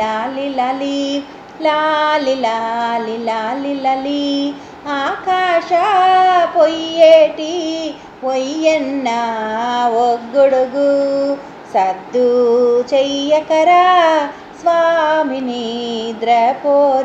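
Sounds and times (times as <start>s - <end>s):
woman singing unaccompanied: 0.0s - 17.0s.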